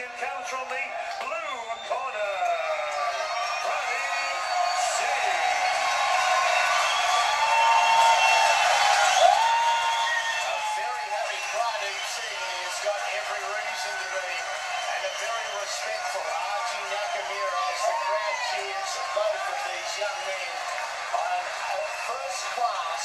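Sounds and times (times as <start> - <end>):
crowd cheering and shouting: 0.0 - 23.0
crowd clapping: 0.0 - 23.0.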